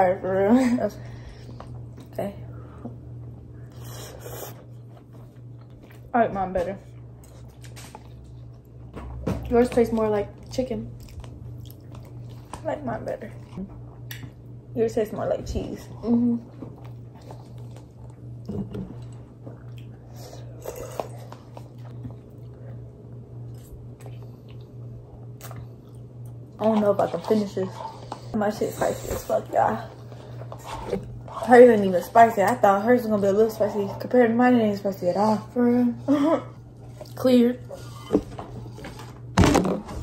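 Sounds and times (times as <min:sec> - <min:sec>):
steady low hum: 0:00.0 - 0:40.0
people chewing noodles: 0:03.3 - 0:06.1, 0:10.4 - 0:12.6, 0:16.3 - 0:32.2.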